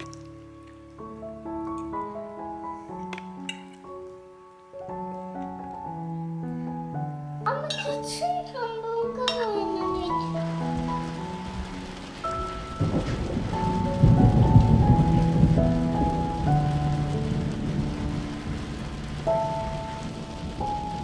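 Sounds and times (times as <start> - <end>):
rain falling: 0.0 - 21.0
soft melodic background music: 0.0 - 21.0
thunder rolling: 9.4 - 21.0.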